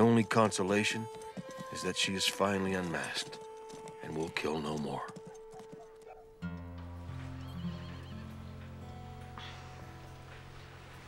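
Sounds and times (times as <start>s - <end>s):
horse hoofbeats on dirt: 0.0s - 11.0s
horse whinny: 7.2s - 8.8s.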